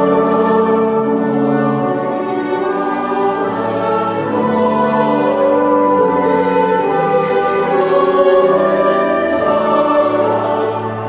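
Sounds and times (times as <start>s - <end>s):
church choir singing: 0.0s - 11.0s
organ: 0.0s - 11.0s.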